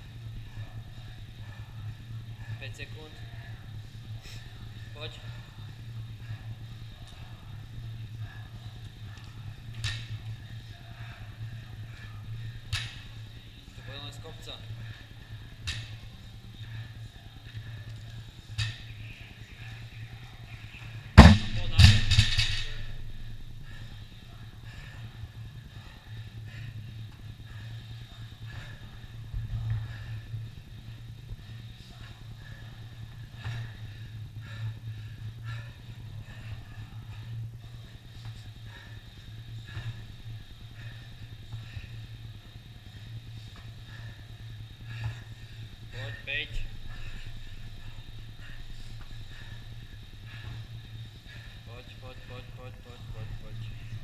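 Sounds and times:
steady low hum: 0.0 - 54.0.

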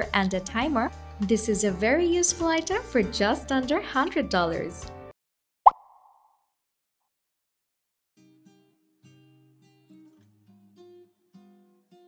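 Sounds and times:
short pop sound effect: 5.6 - 6.4.

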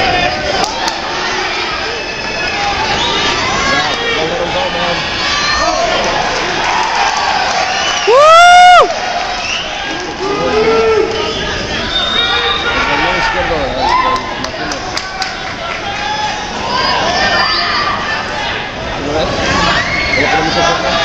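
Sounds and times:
crowd shouting and cheering: 0.0 - 21.0.

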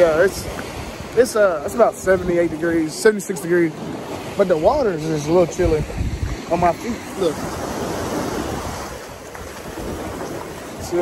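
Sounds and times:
ocean waves breaking: 0.0 - 11.0
wind rumbling on microphone: 0.0 - 11.0.

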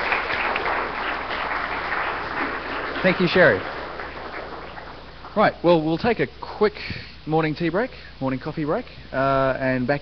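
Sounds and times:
audience applauding: 0.0 - 6.1.

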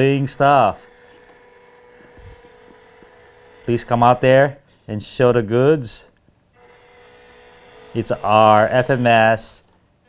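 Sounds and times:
small electric motor whining: 0.0 - 4.8, 6.6 - 9.7.

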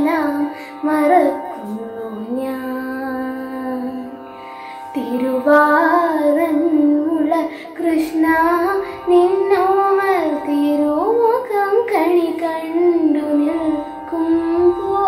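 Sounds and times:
girl singing devotional song: 0.0 - 4.2, 4.9 - 15.0
faint steady drone: 0.0 - 15.0.

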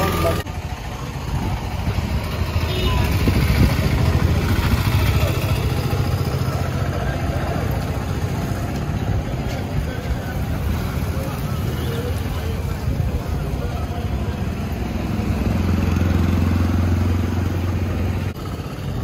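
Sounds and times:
motorcycle engines rumbling: 0.0 - 19.0
background voices: 3.1 - 17.6.

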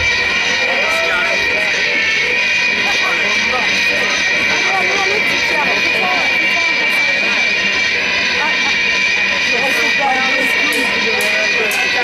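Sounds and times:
audience chattering: 0.0 - 12.0
electric amplifier drone: 0.0 - 12.0.

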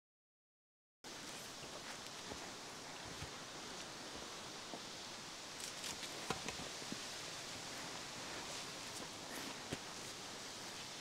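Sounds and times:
faint outdoor hiss: 1.0 - 11.0
footsteps through undergrowth: 1.1 - 4.8, 5.6 - 11.0.

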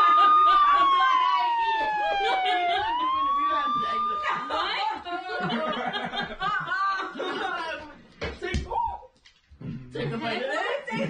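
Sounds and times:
laughter: 0.0 - 1.3, 1.9 - 3.4, 4.8 - 7.7
siren wailing: 0.0 - 5.0
people chatting: 0.0 - 9.0, 9.6 - 11.0.

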